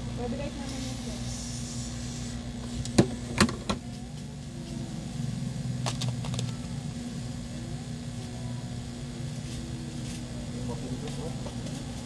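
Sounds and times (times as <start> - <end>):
hot air gun blower humming: 0.0 - 12.0.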